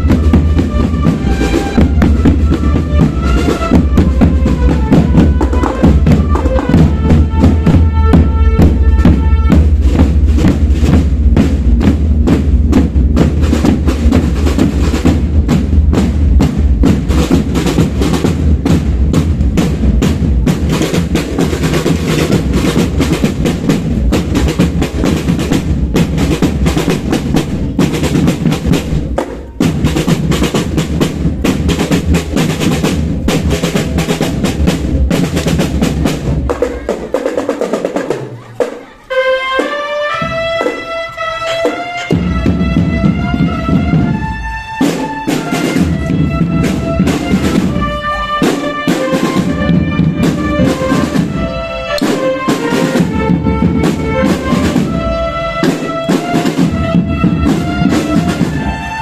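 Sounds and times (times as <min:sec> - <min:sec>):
drumline playing cadence: 0:00.0 - 0:59.0
held high notes: 0:38.4 - 0:59.0.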